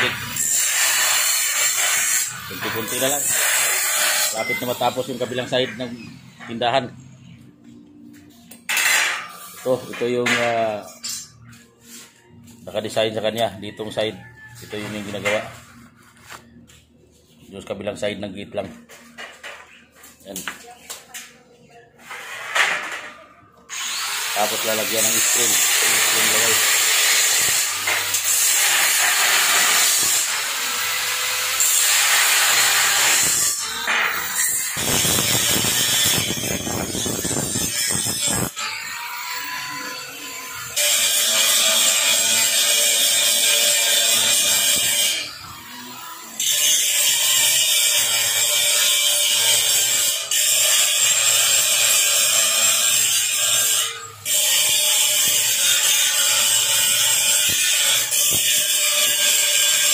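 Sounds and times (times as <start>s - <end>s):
angle grinder grinding metal: 0.0s - 7.4s, 8.5s - 15.9s, 22.0s - 59.9s.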